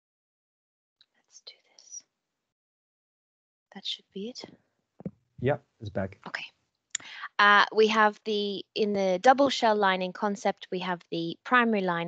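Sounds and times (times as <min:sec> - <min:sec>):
whispered speech with hissing: 0:05.4 - 0:06.4.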